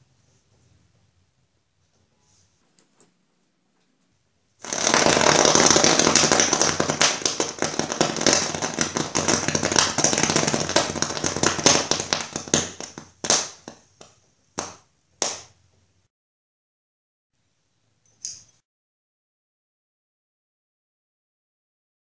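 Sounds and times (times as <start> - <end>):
pyrotechnic mixture burning with pops: 4.6 - 15.6.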